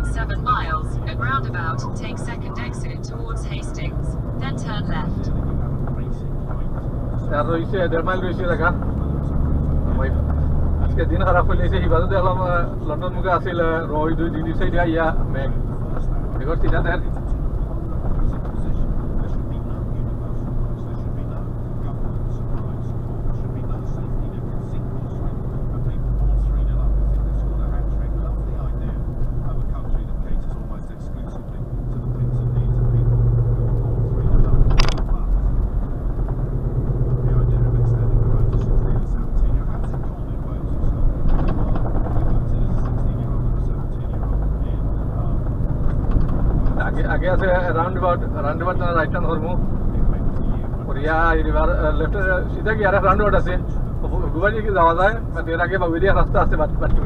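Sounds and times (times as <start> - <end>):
person speaking: 0.0 - 5.4
diesel engine and road noise: 0.0 - 57.0
sharp click: 34.7 - 35.1.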